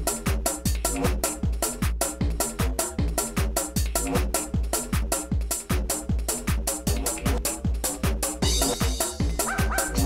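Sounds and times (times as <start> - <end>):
electronic dance music: 0.0 - 10.0
sampled dog barks: 9.4 - 10.0.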